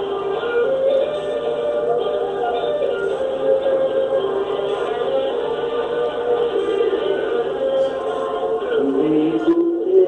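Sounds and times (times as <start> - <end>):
music with long held notes: 0.0 - 10.0.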